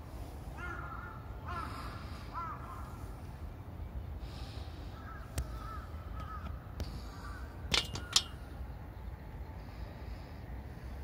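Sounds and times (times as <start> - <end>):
bird calling: 4.4 - 8.4.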